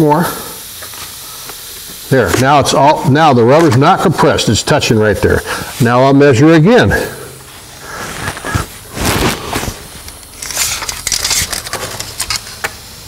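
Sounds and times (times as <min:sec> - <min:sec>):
tape measure rustling and scraping: 0:07.8 - 0:12.6.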